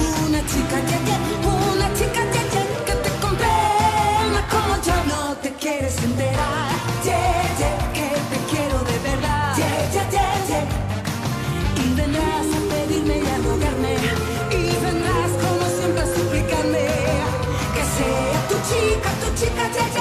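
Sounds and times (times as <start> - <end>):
woman singing into a microphone: 0.0 - 10.7, 11.8 - 20.0
dance-pop backing track: 0.0 - 20.0.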